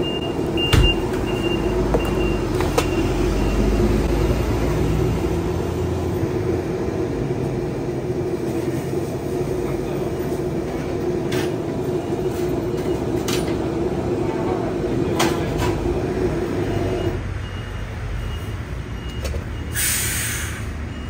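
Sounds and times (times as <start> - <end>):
gas burner roaring: 0.0 - 17.2, 19.0 - 21.0.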